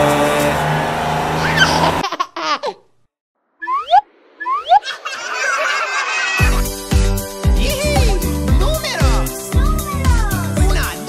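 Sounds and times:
child laughing and squealing: 1.4 - 2.8, 3.6 - 6.7
children's song music: 4.8 - 11.0.

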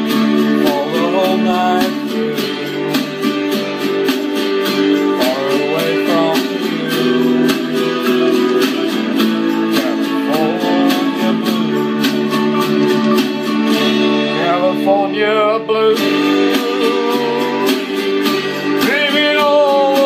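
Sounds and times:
strummed acoustic guitar: 0.0 - 20.0
wavering lead melody: 0.0 - 20.0.

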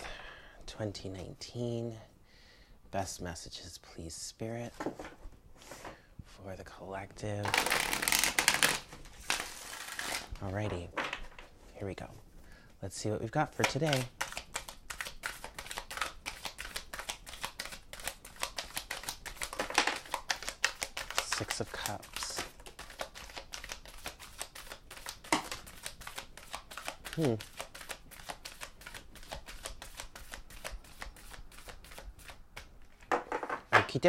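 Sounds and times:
cards being shuffled: 7.4 - 11.4, 13.5 - 34.0.

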